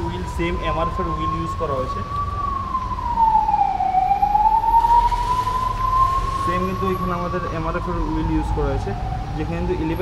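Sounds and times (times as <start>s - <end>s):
high whistle-like whine: 0.4s - 8.1s.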